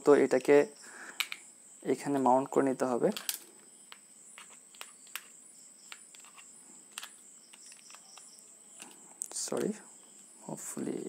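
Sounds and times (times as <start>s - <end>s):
small plastic parts clicking: 1.2s - 1.4s, 3.1s - 10.3s.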